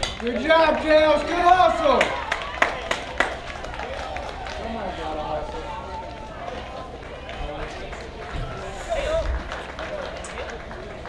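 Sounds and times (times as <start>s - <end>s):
overlapping voices calling and talking: 0.0s - 11.0s.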